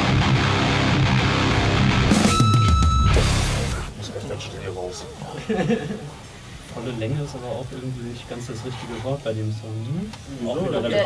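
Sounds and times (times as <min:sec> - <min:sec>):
punk rock with distorted guitars: 0:00.0 - 0:03.9.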